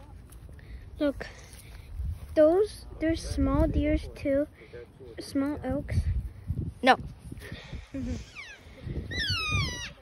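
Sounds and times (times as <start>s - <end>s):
elk squealing calls: 8.3s - 10.0s.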